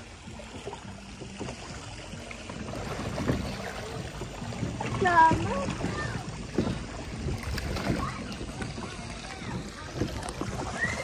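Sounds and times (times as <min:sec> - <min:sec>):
paddle wheels splashing water: 0:00.0 - 0:11.0.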